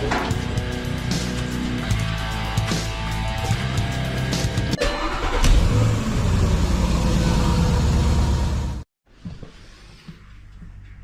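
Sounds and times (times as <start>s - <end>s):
car engine running: 5.6s - 8.8s.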